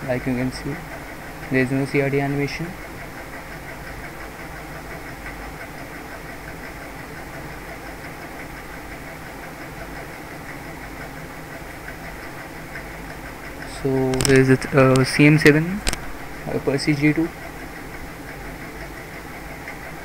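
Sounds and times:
background hum and hiss: 0.0 - 20.0
faint constant tones: 0.0 - 20.0.

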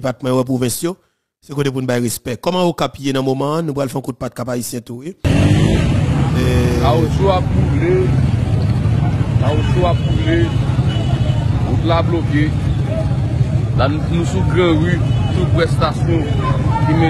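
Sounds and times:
crowd voices: 6.1 - 17.0.

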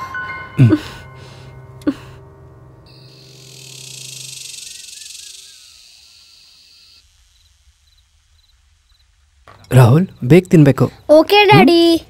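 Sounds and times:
bird-like chirps: 2.9 - 9.7
insect chorus hissing: 2.9 - 11.2.

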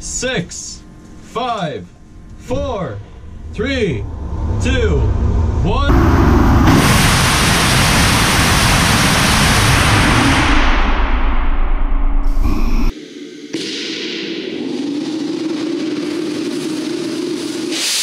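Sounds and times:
low steady hum: 0.0 - 6.8
rocket motor exhaust hiss: 15.4 - 18.0.

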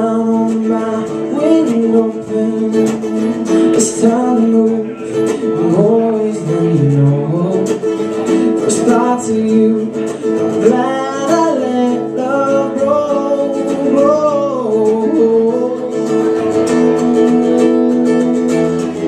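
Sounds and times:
man singing: 0.0 - 19.0
strummed acoustic guitar: 0.0 - 19.0.

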